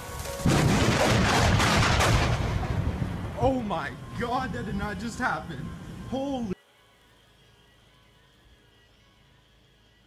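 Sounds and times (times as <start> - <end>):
thunder crack and rumble: 0.4 - 3.4.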